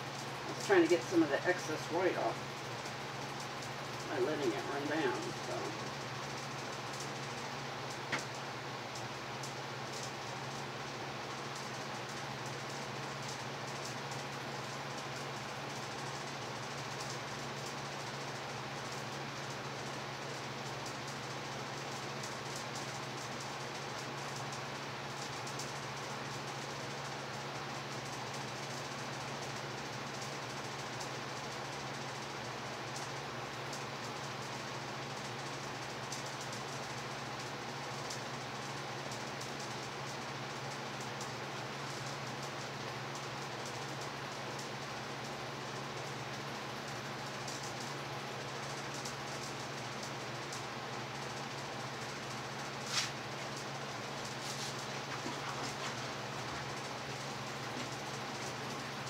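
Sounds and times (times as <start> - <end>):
constant low hum: 0.0 - 59.0
fans and air conditioner whirring: 0.0 - 59.0.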